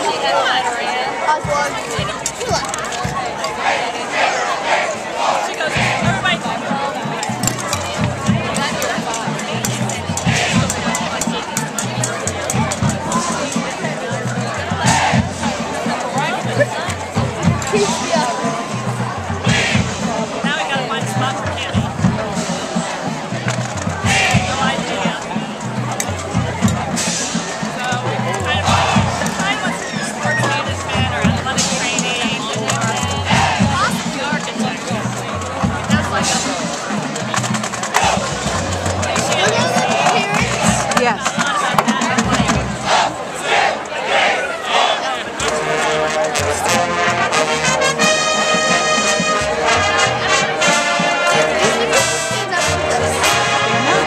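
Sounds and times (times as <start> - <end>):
marching band brass chords: 0.0 - 54.0
stadium crowd chatter: 0.0 - 54.0.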